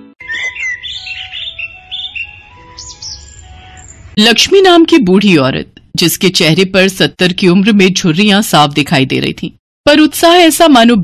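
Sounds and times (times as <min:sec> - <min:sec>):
birds chirping: 0:00.2 - 0:04.2
soft background music: 0:00.3 - 0:04.2.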